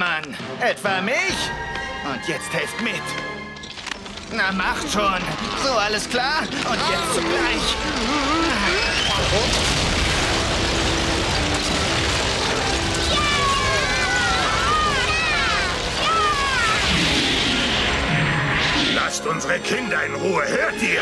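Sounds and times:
rumble of tumbling boulders: 0:04.0 - 0:18.2.

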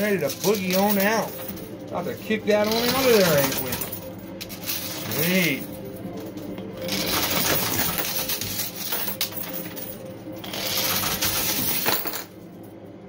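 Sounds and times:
coins clattering and chinking: 0:00.0 - 0:12.7
steady low hum: 0:00.0 - 0:13.0.

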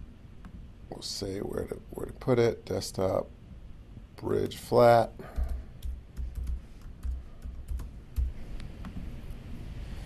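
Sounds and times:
computer keyboard typing: 0:05.3 - 0:09.0.

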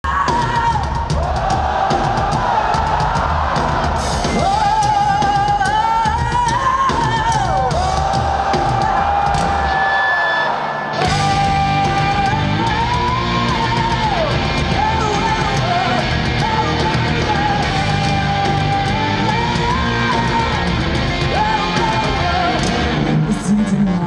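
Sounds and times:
hard rock band playing live: 0:00.0 - 0:09.9, 0:10.8 - 0:24.0.

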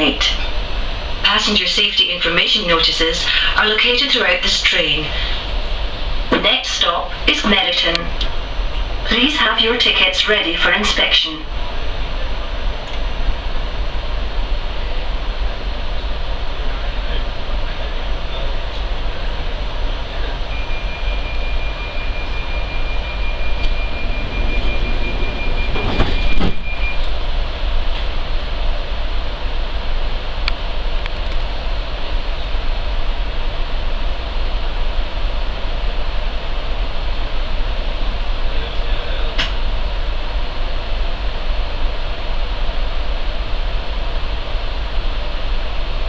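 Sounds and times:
thin high whine: 0:00.0 - 0:46.0
train interior rumble: 0:00.0 - 0:46.0.

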